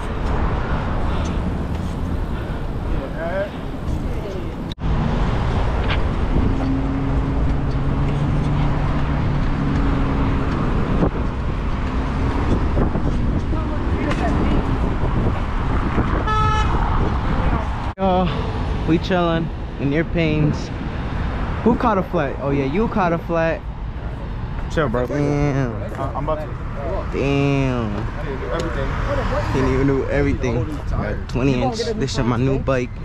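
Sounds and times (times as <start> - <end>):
wind buffeting microphone: 0.0 - 18.9
road traffic noise: 0.0 - 33.0
low vehicle horn: 16.2 - 16.9.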